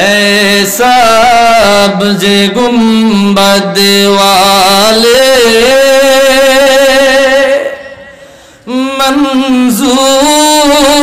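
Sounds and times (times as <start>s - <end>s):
man singing devotional song: 0.0s - 11.0s
man breathing: 8.1s - 8.7s.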